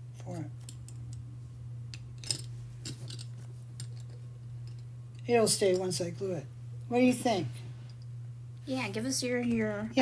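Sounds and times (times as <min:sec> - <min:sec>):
steady low hum: 0:00.0 - 0:10.0
metal jewelry pieces clicking: 0:01.9 - 0:05.9.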